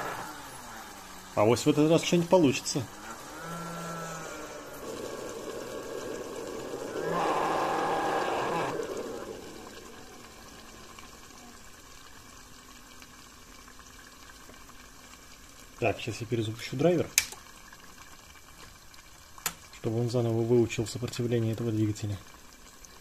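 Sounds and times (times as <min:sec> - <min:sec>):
rough motor buzz: 0:00.0 - 0:01.4, 0:02.8 - 0:11.5
motor whine: 0:00.0 - 0:11.7
liquid nitrogen bubbling: 0:00.0 - 0:23.0.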